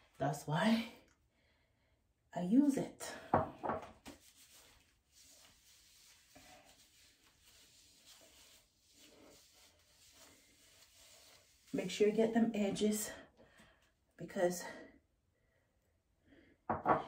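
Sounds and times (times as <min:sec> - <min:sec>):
comb rustling through hair: 0:04.0 - 0:12.4.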